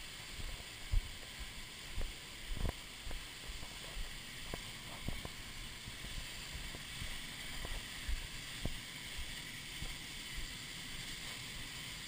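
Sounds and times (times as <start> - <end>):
footsteps on gravel: 6.1 - 9.3.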